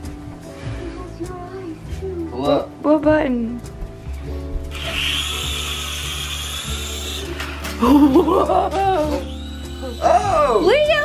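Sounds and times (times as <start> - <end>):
small propeller motors whirring: 4.7 - 7.4.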